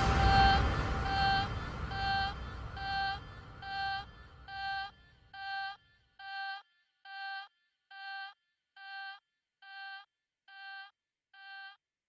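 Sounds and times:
low rumble: 0:00.0 - 0:05.2
pulsing synth note: 0:00.0 - 0:05.6.

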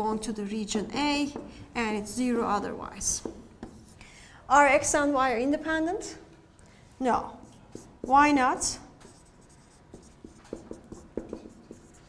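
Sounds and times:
marker pen tapping and squeaking: 0:09.0 - 0:12.0.

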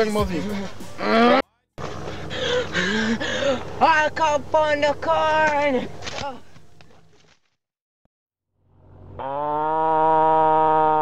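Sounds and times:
person screaming: 0:01.0 - 0:01.4, 0:09.6 - 0:11.0.

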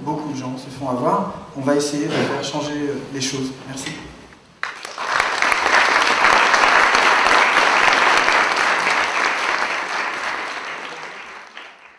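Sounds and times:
audience applauding: 0:04.6 - 0:11.9.

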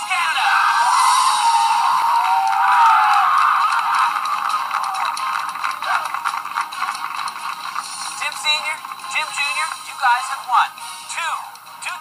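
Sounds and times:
gliding music line: 0:00.4 - 0:11.9
clattering noisy commotion: 0:00.8 - 0:09.9.

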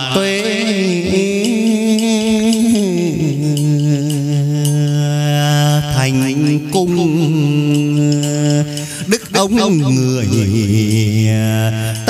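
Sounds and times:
man singing long vowels: 0:00.0 - 0:12.0
light percussion ticks: 0:00.1 - 0:12.0.

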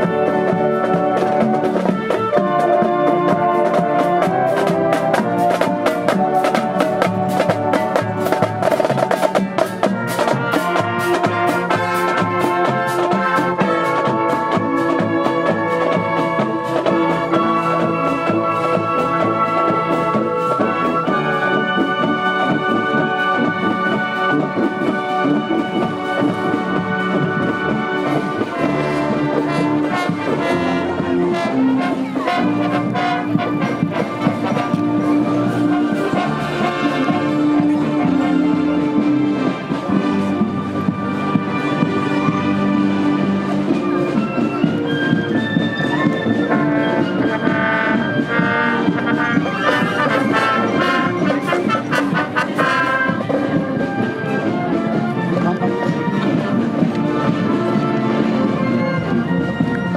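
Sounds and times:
marching band brass and saxophones: 0:00.0 - 0:59.9
marching snare and tenor drums: 0:00.0 - 0:59.9.

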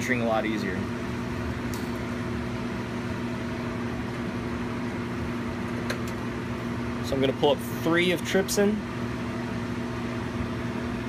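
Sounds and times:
blower humming: 0:00.0 - 0:11.0.

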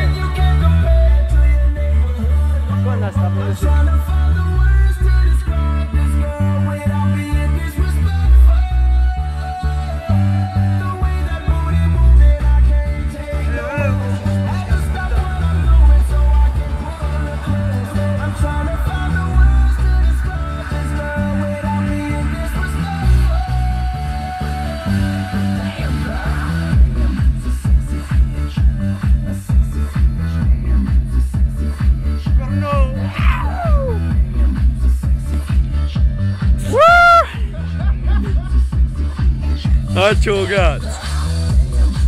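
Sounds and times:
loud music with heavy bass: 0:00.0 - 0:42.0.

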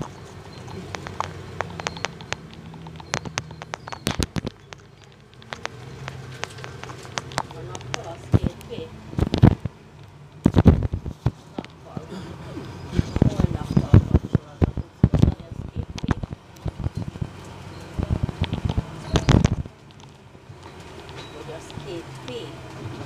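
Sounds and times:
bus engine drone: 0:00.0 - 0:23.0
sharp clicks and rattles: 0:00.0 - 0:23.0
passengers' voices: 0:06.2 - 0:09.7, 0:10.5 - 0:19.7, 0:21.1 - 0:23.0.

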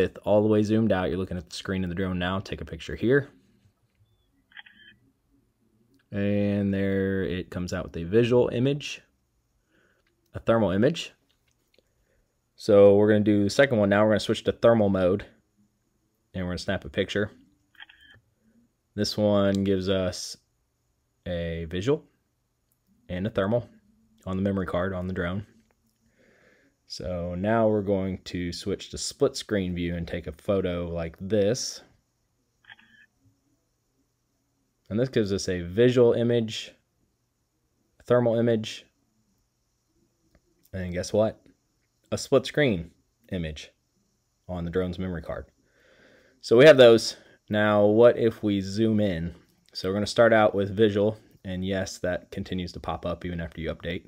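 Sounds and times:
faint camera shutter sound: 0:04.5 - 0:05.0, 0:17.7 - 0:18.2, 0:32.6 - 0:33.1.

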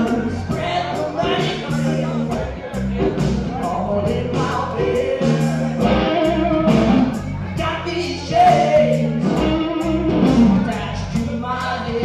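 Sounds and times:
bass guitar: 0:00.0 - 0:12.0
drum kit with cymbals: 0:00.0 - 0:12.0
electric guitar: 0:00.0 - 0:12.0
person singing: 0:00.0 - 0:12.0.

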